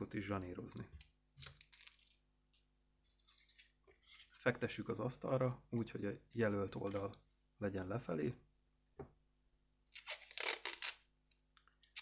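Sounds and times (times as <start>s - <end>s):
masking tape pulled and torn: 9.9s - 11.1s.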